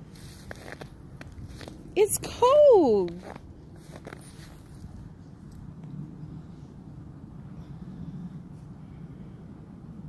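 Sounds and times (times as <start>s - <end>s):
footsteps crunching in snow: 0.0s - 1.8s, 3.0s - 5.0s
low steady rumble: 0.0s - 10.0s.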